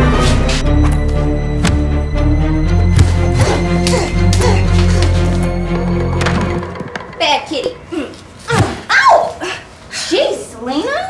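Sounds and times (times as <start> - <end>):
woman's wordless cries: 3.4 - 5.3.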